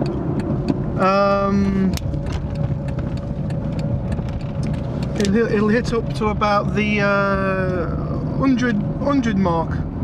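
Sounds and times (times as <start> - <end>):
car engine rumble inside cabin: 0.0 - 10.0
light clicks and rattles: 1.5 - 6.3.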